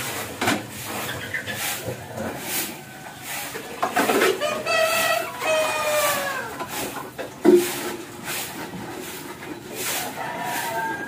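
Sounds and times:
rooster crowing: 4.4s - 6.6s, 10.0s - 11.0s.

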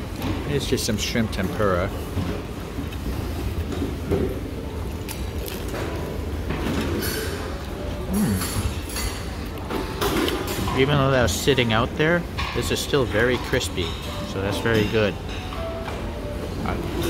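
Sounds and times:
indistinct diners chatter: 0.0s - 17.0s.

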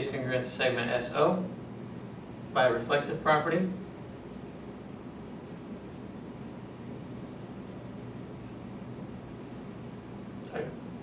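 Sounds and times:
low room hum: 0.0s - 11.0s
marker writing on whiteboard: 3.7s - 8.6s.

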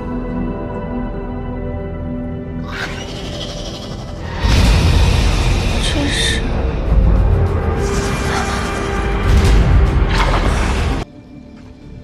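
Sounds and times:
tense background score: 0.0s - 12.0s.

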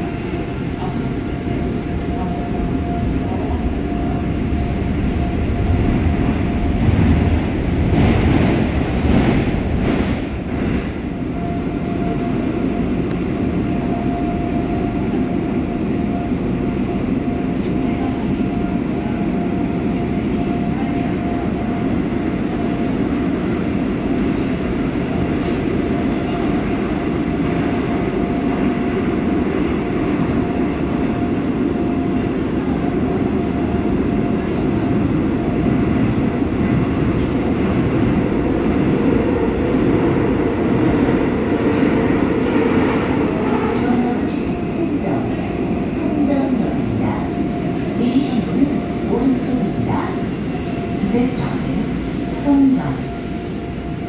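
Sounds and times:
train wheels rumbling on rail: 0.0s - 54.0s.

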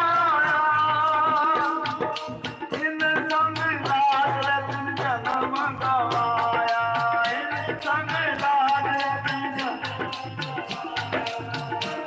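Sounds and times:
harmonium notes: 0.0s - 12.0s
man singing: 0.0s - 12.0s
tabla strokes: 0.0s - 12.0s.

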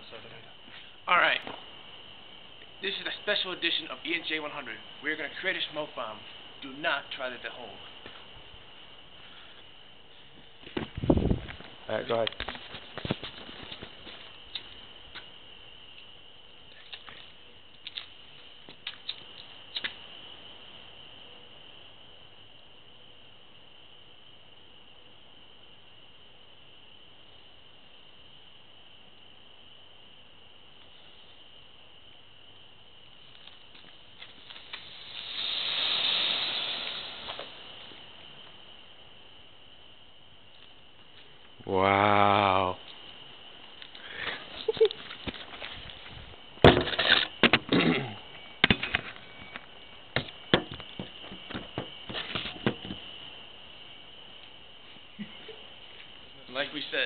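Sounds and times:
smoke bomb hissing: 33.1s - 40.5s.

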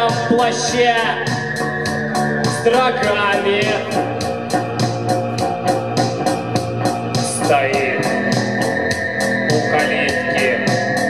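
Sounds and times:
organ keyboard chords: 0.0s - 11.0s
steady bass line: 0.0s - 11.0s
ticking beat: 0.0s - 11.0s.

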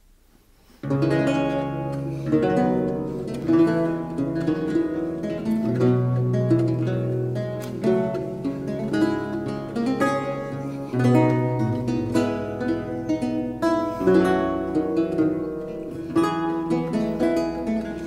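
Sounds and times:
lute duet: 0.6s - 18.0s.

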